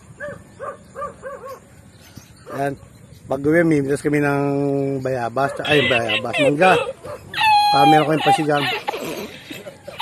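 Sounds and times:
animal calling: 0:05.4 - 0:10.0.

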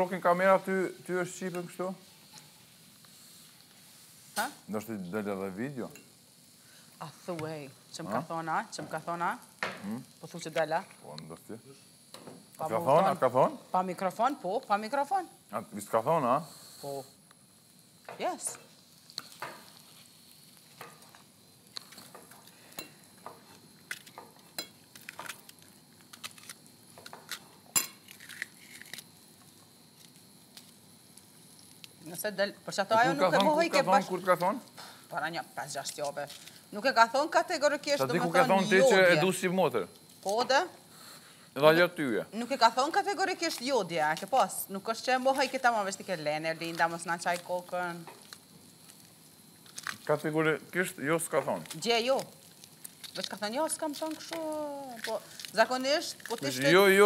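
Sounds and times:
faint steady hiss: 0:00.0 - 0:57.0
food sizzling in a pan: 0:00.0 - 0:57.0
person speaking: 0:38.0 - 0:39.4, 0:56.3 - 0:57.0.

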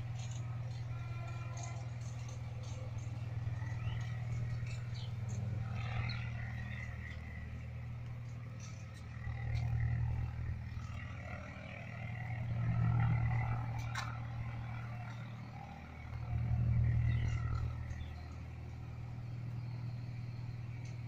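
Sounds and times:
low machine hum: 0:00.0 - 0:21.0.

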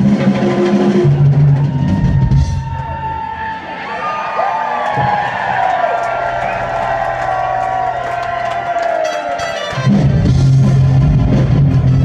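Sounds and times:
crowd cheering and whooping: 0:01.0 - 0:11.6.

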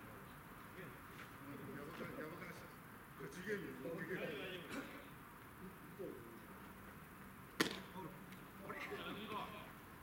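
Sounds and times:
baseball hitting leather mitt: 0:07.6 - 0:07.8.

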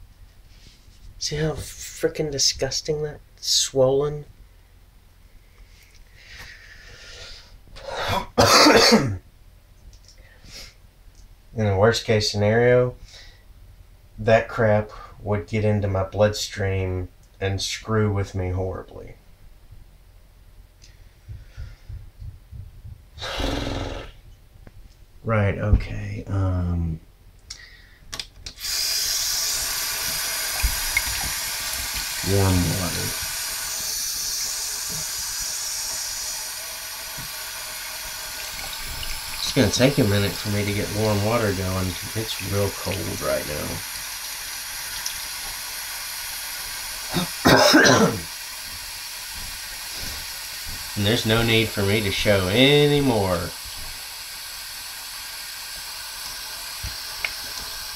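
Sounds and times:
faint low thumps: 0:21.2 - 0:23.2
tap water running into sink: 0:28.6 - 0:47.2, 0:48.2 - 0:57.9
person grunting: 0:47.1 - 0:47.4.

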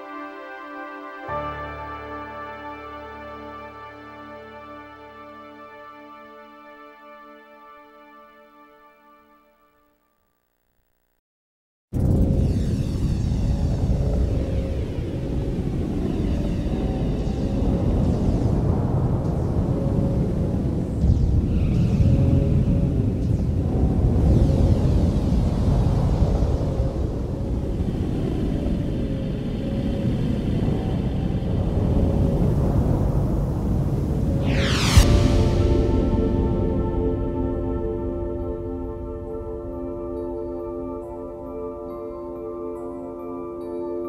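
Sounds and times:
deep synth rumble: 0:12.0 - 0:40.2
faint sweeping tones: 0:12.2 - 0:42.1.

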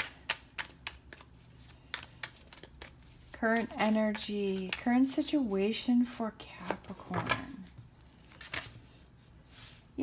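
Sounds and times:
cards being shuffled by hand: 0:00.0 - 0:05.2, 0:06.6 - 0:09.1.

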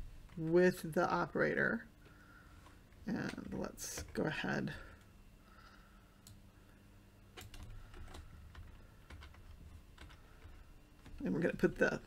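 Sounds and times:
low steady hum: 0:00.0 - 0:12.0
faint keyboard keystrokes: 0:07.3 - 0:11.2.

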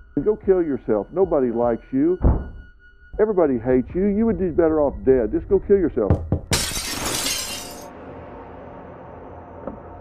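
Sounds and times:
glass window shattering: 0:06.5 - 0:07.9.

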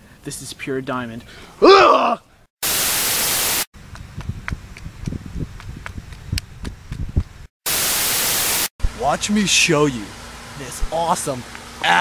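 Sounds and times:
tv static white noise: 0:02.6 - 0:03.7, 0:07.7 - 0:09.2
low thumps and clicks: 0:03.9 - 0:07.4.

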